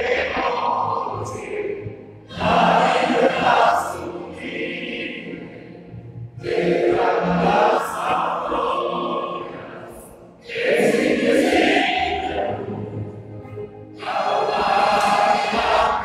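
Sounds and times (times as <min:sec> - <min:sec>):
recorded choir singing with accompaniment: 0:00.0 - 0:16.0.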